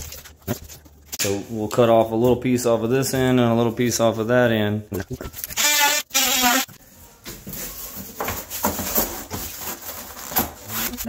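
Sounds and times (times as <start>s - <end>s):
handling rustles and knocks: 7.2s - 10.7s.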